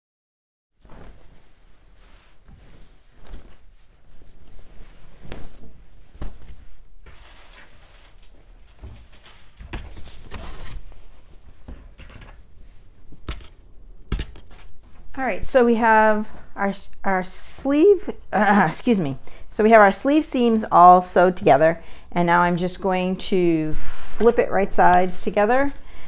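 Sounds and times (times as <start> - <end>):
cloth rustling: 0.8 - 15.2.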